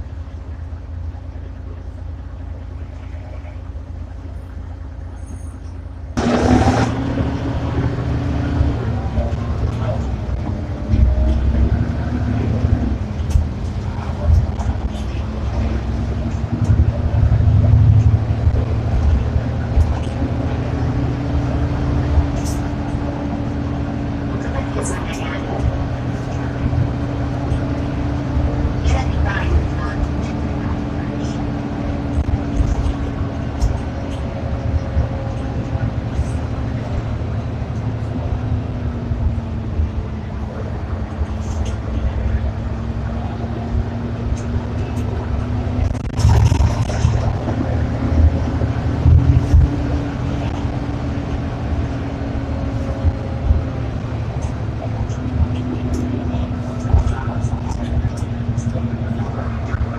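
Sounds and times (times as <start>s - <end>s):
bus diesel engine drone: 0.0s - 59.9s
low road rumble: 0.0s - 59.9s
passengers talking: 0.0s - 59.9s
bus body clicks and rattles: 9.1s - 31.0s.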